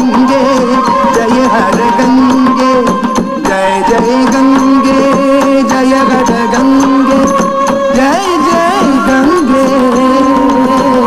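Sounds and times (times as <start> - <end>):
percussion strokes: 0.0 - 11.0.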